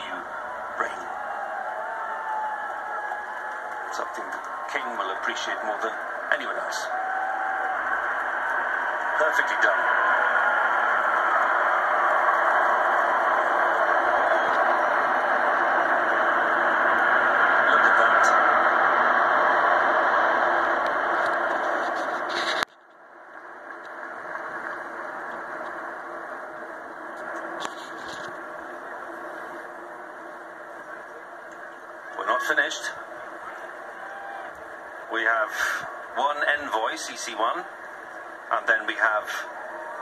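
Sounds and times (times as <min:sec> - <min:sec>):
fighter jets roaring overhead: 0:00.0 - 0:22.6, 0:25.7 - 0:40.0.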